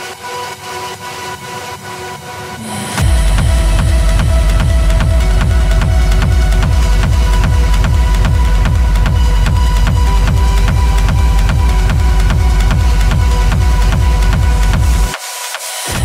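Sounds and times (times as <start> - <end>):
deep bass: 2.6 - 15.2
techno kick drum: 3.0 - 16.0.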